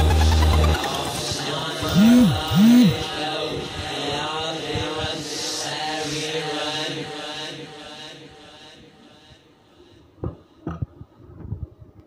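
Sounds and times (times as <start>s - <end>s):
voice chanting long tones: 0.0s - 3.2s.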